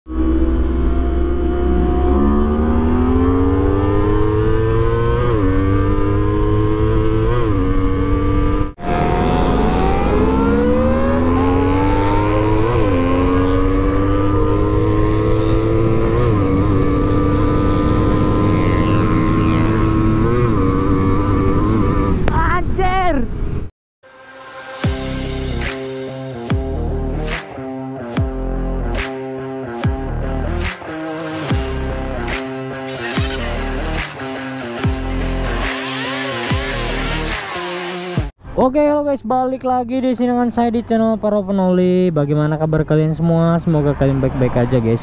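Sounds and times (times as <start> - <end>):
motorcycle engine accelerating: 0.1 - 22.3, 28.2 - 38.4.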